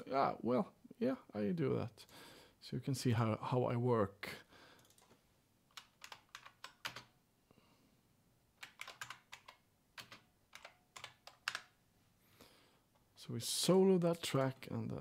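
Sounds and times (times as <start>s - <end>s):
keyboard typing: 4.8s - 7.2s, 8.6s - 11.8s.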